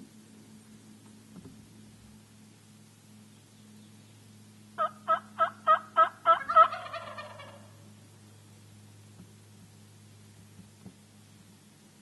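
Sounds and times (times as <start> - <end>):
wild turkey gobbling: 4.8 - 8.0.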